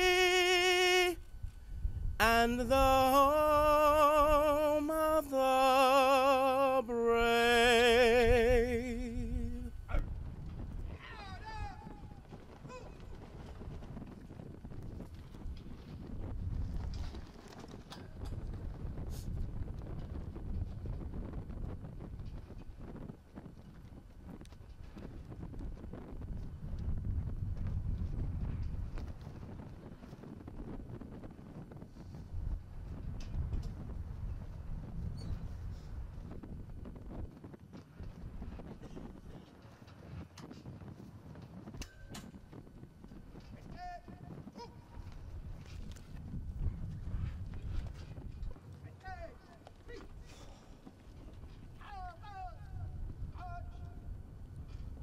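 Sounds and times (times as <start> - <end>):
wind gusting on microphone: 0.0 - 55.0.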